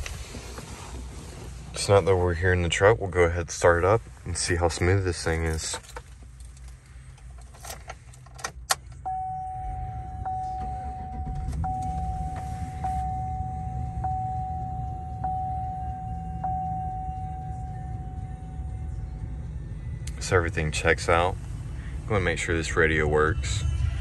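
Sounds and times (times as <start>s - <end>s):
truck engine starting and idling: 0.0s - 24.0s
keys jangling in ignition: 5.4s - 9.0s
dashboard warning chime: 9.0s - 19.4s.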